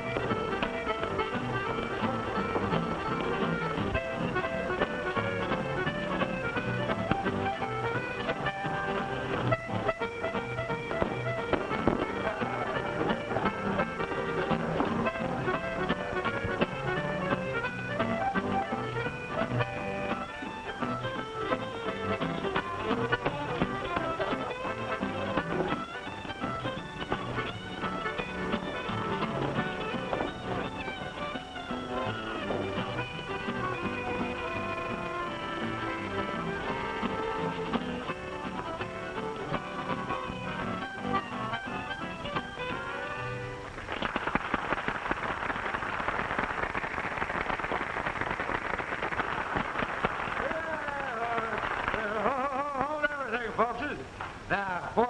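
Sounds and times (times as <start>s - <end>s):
upbeat dance-band music: 0.0s - 43.7s, 50.4s - 55.0s.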